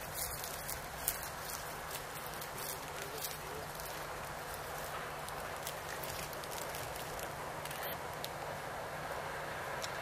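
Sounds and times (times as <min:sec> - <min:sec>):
diesel locomotive engine hum: 0:00.0 - 0:10.0.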